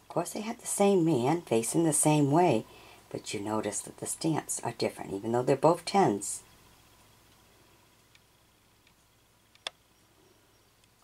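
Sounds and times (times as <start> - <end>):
faint ticks: 10.8 - 11.0.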